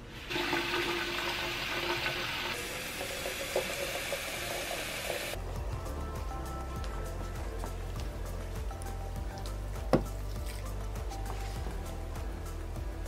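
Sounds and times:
water filling a metal can: 0:00.2 - 0:05.4.

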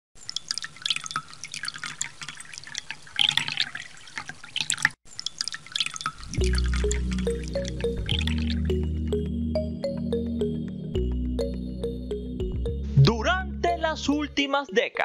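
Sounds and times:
water drops dripping into water: 0:00.2 - 0:09.4
music with deep bass: 0:06.4 - 0:14.4.

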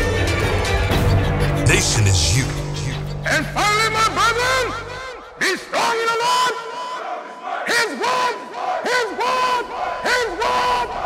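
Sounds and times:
men shouting calls in unison: 0:04.3 - 0:11.0.

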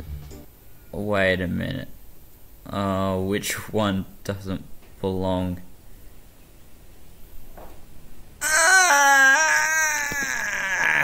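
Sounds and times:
high-pitched wailing cry: 0:08.4 - 0:11.0.

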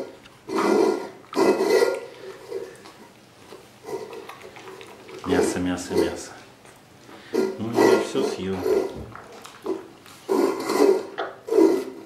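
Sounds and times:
bear cub eating from metal bowl: 0:00.0 - 0:06.6, 0:07.3 - 0:12.0
chewing and slurping: 0:00.0 - 0:12.0.

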